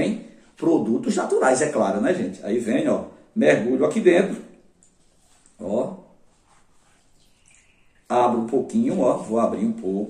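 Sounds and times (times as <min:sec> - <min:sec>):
faint liquid stirring: 0:04.6 - 0:09.4.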